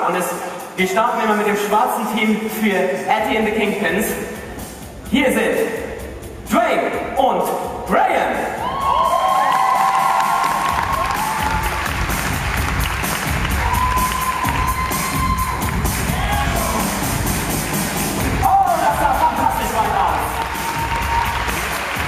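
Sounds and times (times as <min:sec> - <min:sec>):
loud arena music: 0:00.0 - 0:22.0
crowd cheering and whooping: 0:08.6 - 0:17.3, 0:18.3 - 0:22.0.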